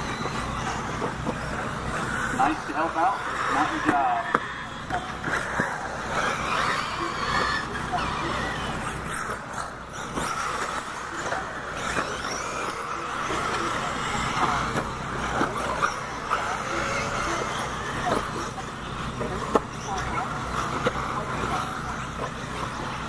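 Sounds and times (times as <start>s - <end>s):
electric motors whining: 0.0s - 23.0s
toy cars clicking and knocking: 0.2s - 23.0s.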